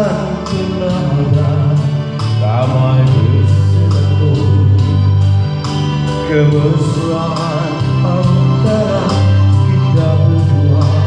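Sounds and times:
backing track with steady beat: 0:00.0 - 0:11.0
man singing karaoke: 0:00.0 - 0:11.0.

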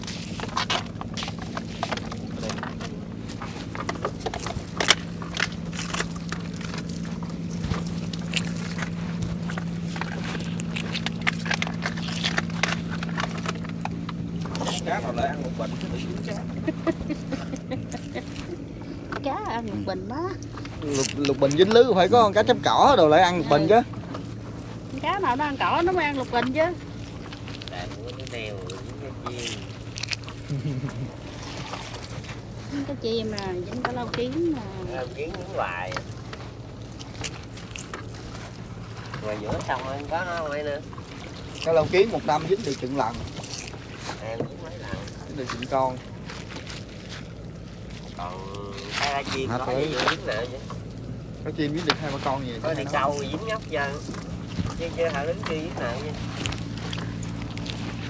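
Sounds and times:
water dripping and sloshing: 0:00.0 - 0:16.7, 0:31.1 - 0:58.0
steady low hum: 0:00.0 - 0:58.0
wet net hauled over boat side: 0:00.0 - 0:58.0.

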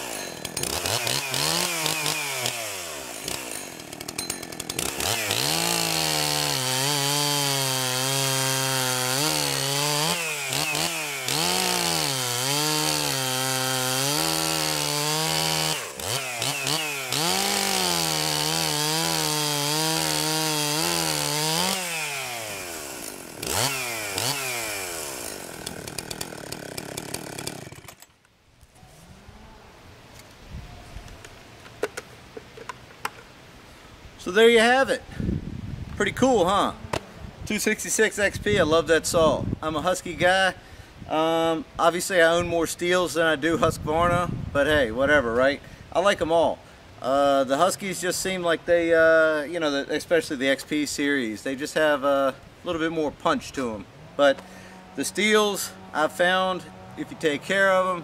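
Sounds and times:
chainsaw cutting log: 0:00.0 - 0:28.2, 0:53.5 - 0:58.0.

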